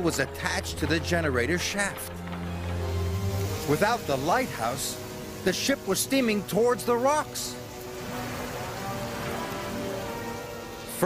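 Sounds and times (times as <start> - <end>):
music with sustained notes: 0.0 - 11.0
steady rain: 0.0 - 11.0.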